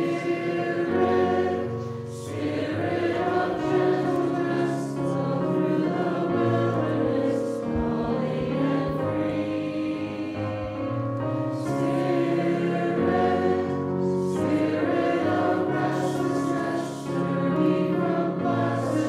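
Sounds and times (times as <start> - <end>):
congregation singing a hymn: 0.0 - 19.0
instrumental accompaniment: 0.0 - 19.0.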